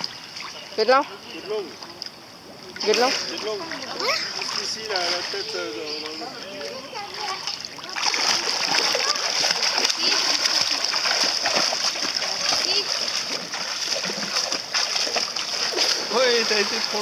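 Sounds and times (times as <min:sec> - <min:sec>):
child swimming splashing water: 0:02.8 - 0:17.0.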